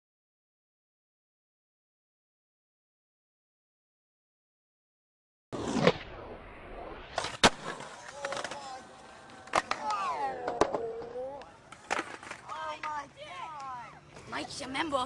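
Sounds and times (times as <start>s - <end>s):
skateboard popping and landing: 5.6s - 6.2s, 7.1s - 13.1s
skateboard wheels rolling on concrete: 5.6s - 15.0s
voices calling out: 7.9s - 14.8s.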